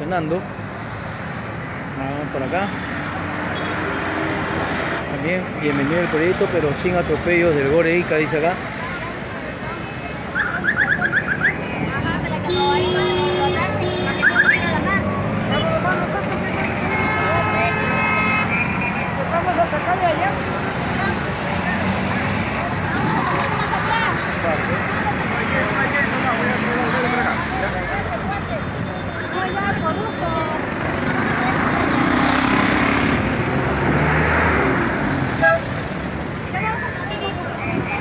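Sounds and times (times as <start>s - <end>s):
crowd voices: 0.0s - 38.0s
traffic: 0.0s - 38.0s
vehicle horns: 10.6s - 19.7s, 35.3s - 35.8s, 36.6s - 38.0s.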